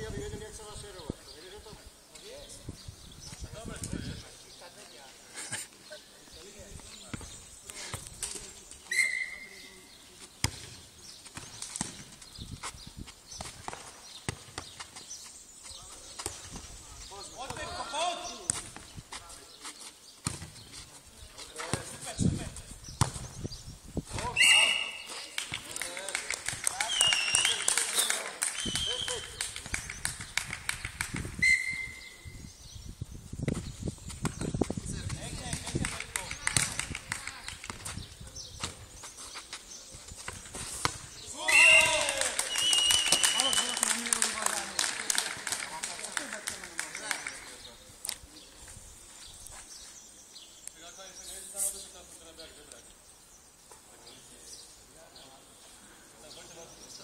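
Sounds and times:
players calling out: 41.3s - 47.4s.

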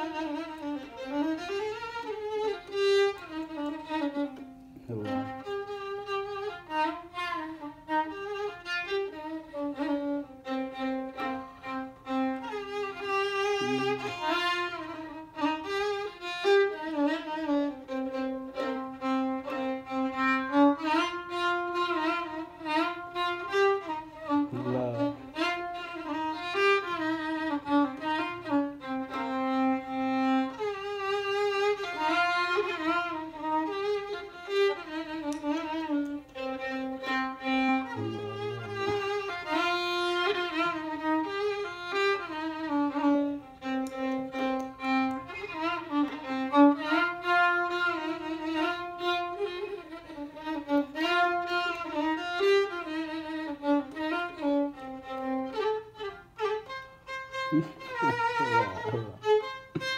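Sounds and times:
solo violin melody: 0.0s - 59.9s.

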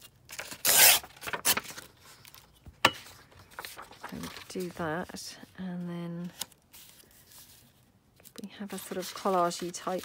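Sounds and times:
paper rustling: 0.3s - 5.2s, 6.2s - 10.0s.

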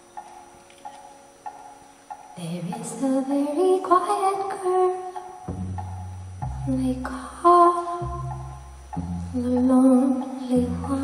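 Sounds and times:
woman singing softly: 2.4s - 5.3s, 6.7s - 8.2s, 9.3s - 11.0s
low bass notes: 5.4s - 11.0s.

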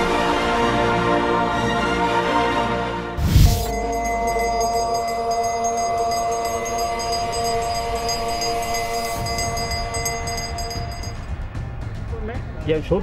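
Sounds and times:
sustained droning chord: 3.6s - 11.6s
rapid high metallic ticking: 3.7s - 11.6s.

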